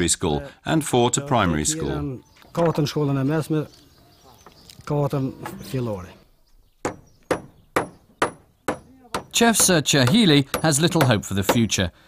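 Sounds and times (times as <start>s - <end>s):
hammer blows on wooden boards: 1.4s - 3.0s, 6.8s - 11.8s.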